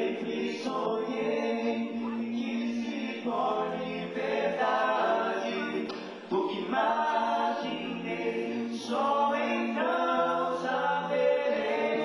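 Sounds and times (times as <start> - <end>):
male vocal group singing a cappella: 0.0 - 12.0.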